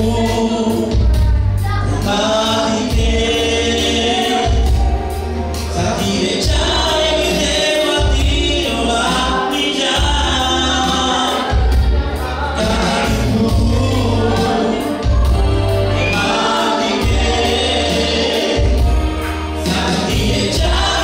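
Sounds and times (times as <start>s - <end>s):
woman singing gospel: 0.0s - 21.0s.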